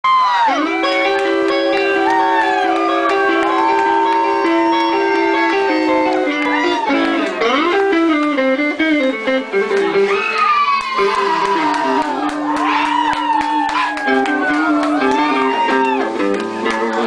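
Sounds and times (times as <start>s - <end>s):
electric blues guitar: 0.4s - 17.0s.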